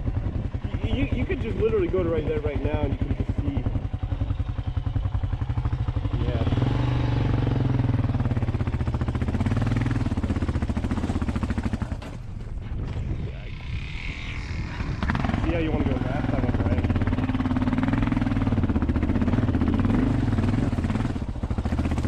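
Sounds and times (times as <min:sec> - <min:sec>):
motorcycle engine revving: 0:00.0 - 0:22.0.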